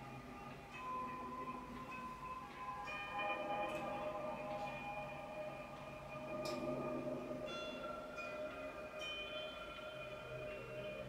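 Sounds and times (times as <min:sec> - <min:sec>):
ambient electric guitar: 0:00.0 - 0:11.0.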